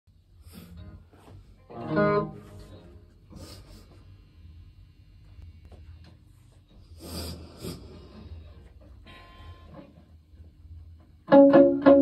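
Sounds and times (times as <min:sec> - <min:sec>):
electric guitar notes and chord: 0:01.6 - 0:03.1, 0:11.2 - 0:12.0.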